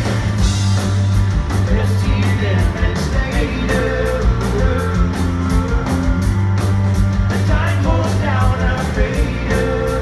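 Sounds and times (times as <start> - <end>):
live rock band playing: 0.0 - 10.0
lead vocal singing: 1.6 - 6.5, 7.2 - 10.0.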